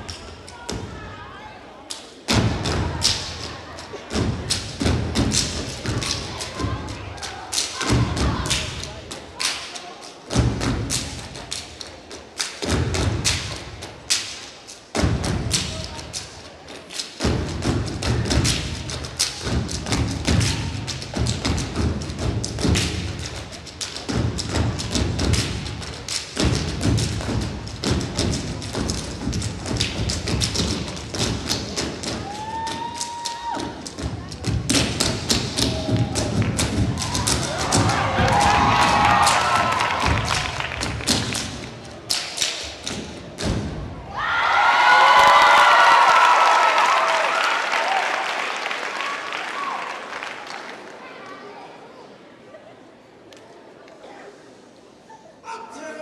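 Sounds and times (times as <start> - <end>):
rhythmic clapping: 1.9 - 43.8, 45.1 - 51.0
crowd cheering and screaming: 32.2 - 33.7, 37.0 - 40.4, 44.1 - 48.4
crowd shouts: 32.2 - 33.8, 35.6 - 40.6, 44.1 - 50.0.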